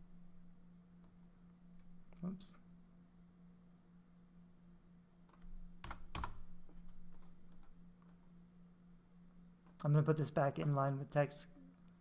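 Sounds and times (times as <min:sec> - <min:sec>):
computer clicks: 0:07.1 - 0:08.2.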